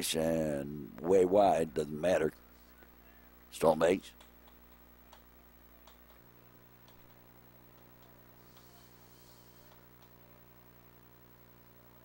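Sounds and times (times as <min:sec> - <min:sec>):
low steady hum: 0:00.0 - 0:12.0
faint irregular clicks: 0:04.1 - 0:06.2, 0:06.8 - 0:08.8, 0:09.6 - 0:10.2.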